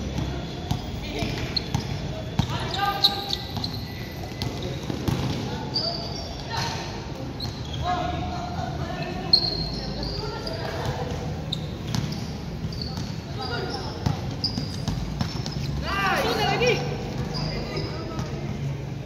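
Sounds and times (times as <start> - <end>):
players calling out: 0.0 - 18.6
short high shoe squeaks: 1.2 - 4.9, 7.3 - 8.1, 8.9 - 15.8.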